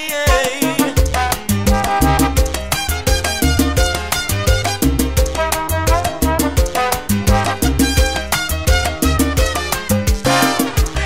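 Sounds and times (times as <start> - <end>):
salsa music: 0.0 - 11.0.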